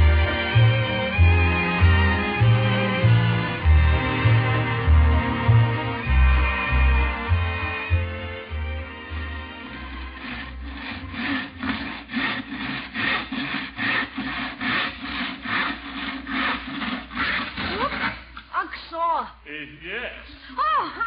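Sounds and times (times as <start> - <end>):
hand saw cutting wood: 9.6 - 18.5
person speaking: 17.6 - 21.0.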